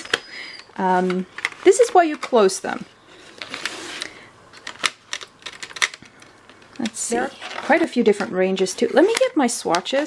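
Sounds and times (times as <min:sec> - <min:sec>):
wooden pencils clicking together: 0:04.0 - 0:07.0.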